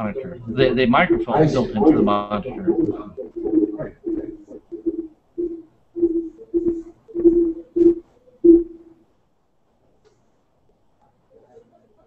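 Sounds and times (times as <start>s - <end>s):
garbled speech over call link: 0.0s - 4.4s.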